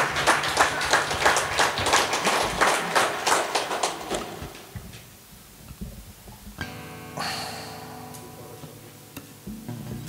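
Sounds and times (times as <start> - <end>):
small audience applauding: 0.0 - 5.0.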